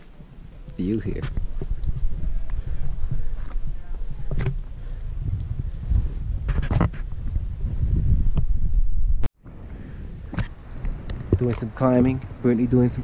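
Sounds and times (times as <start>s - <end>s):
wind buffeting microphone: 0.1s - 13.0s.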